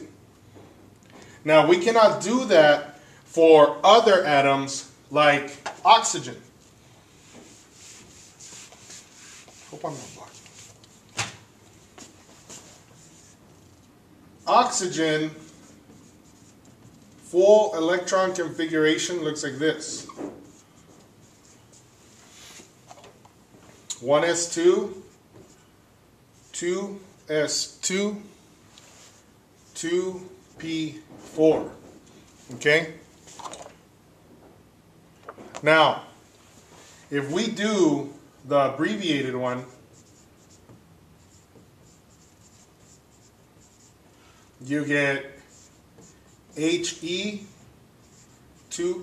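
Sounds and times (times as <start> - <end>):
marker writing on whiteboard: 5.6 - 11.1, 11.7 - 13.9, 14.6 - 17.4, 19.8 - 21.9, 29.0 - 32.6, 39.6 - 49.0.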